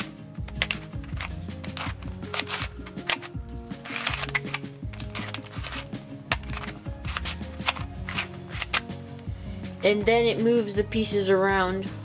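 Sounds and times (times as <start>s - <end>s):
background music: 0.0s - 12.0s
puzzle cube plastic clicks: 0.4s - 8.9s.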